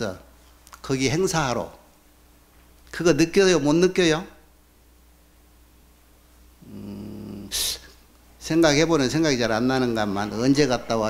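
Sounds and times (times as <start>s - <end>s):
man humming low: 6.6s - 8.0s.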